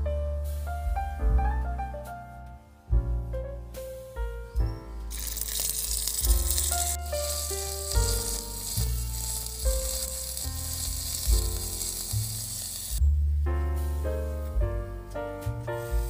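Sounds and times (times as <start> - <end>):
background piano music: 0.0 - 16.0
onion paste sizzling in oil: 5.1 - 13.0.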